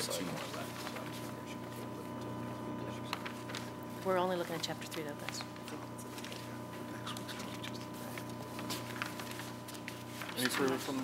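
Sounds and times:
low electrical hum: 0.0s - 11.0s
paper pages rustling: 0.2s - 1.9s, 2.9s - 3.8s, 4.5s - 11.0s.

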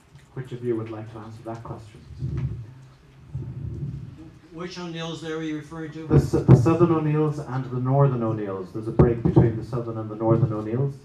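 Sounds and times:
microphone handling rumble: 1.3s - 4.5s, 6.1s - 7.2s, 8.8s - 10.8s.

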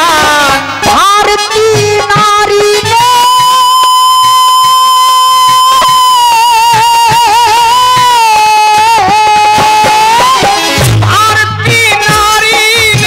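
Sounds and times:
harmonium: 0.0s - 13.0s.

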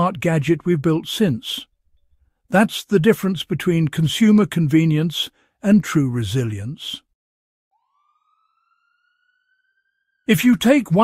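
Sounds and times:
faint tone gliding upward: 7.7s - 10.3s.

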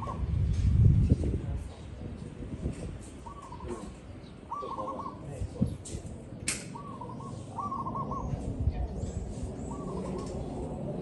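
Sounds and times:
dove cooing: 0.0s - 0.3s, 3.2s - 5.3s, 6.7s - 8.4s, 9.6s - 10.7s
sharp click: 5.8s - 6.8s.

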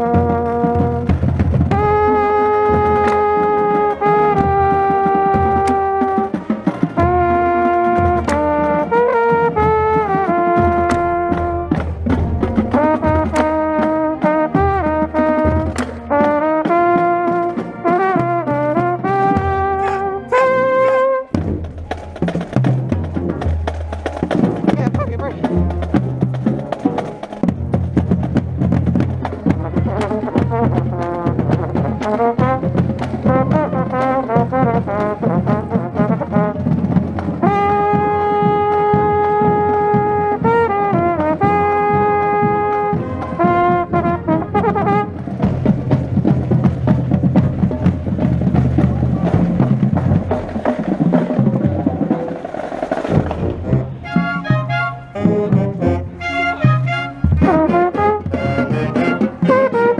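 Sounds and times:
marching band brass: 0.0s - 59.9s
mellophone holding long notes: 18.2s - 21.4s, 53.6s - 59.9s.

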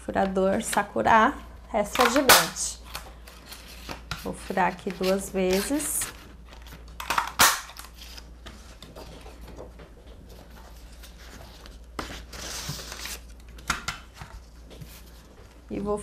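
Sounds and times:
paper rustling: 7.8s - 13.6s.

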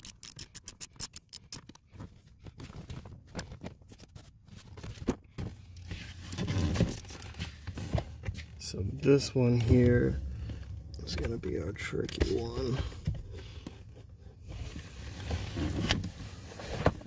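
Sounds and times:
hand ratchet clicking: 0.0s - 1.8s.

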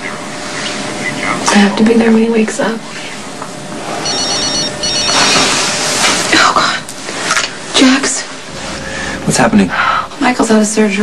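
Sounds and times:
phone ringtone rapid beeps: 4.0s - 5.4s.

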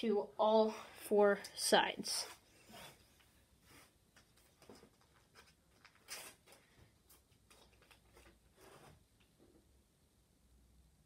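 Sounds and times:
tape rustling and tapping: 4.1s - 9.6s.

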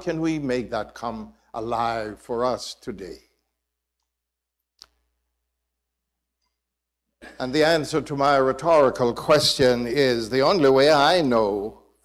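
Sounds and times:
man speaking: 0.0s - 3.3s, 7.3s - 11.8s.

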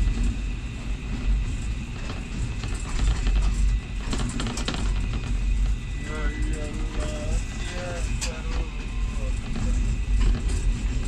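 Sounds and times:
diesel locomotive rumble: 0.0s - 11.0s.

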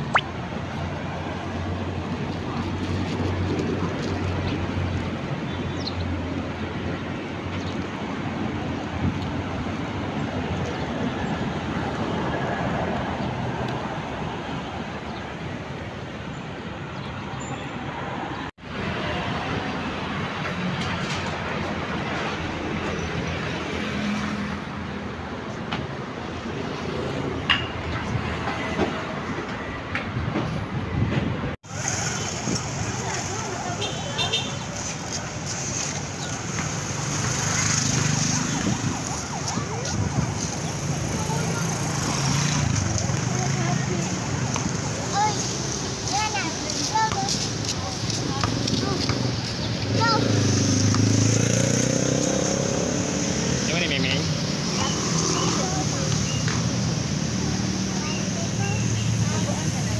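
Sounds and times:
street traffic: 0.0s - 59.9s.

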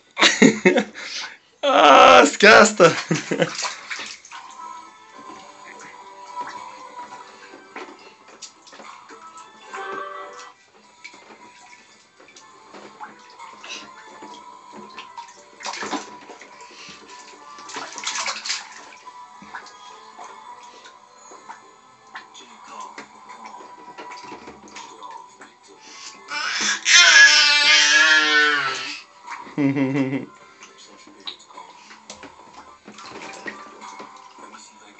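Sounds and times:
background music: 0.0s - 34.9s
baby splashing bath water: 0.3s - 34.9s.

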